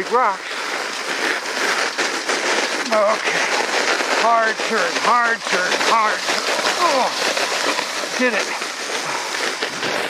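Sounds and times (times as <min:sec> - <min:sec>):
sled runners scraping over snow: 0:00.0 - 0:10.0.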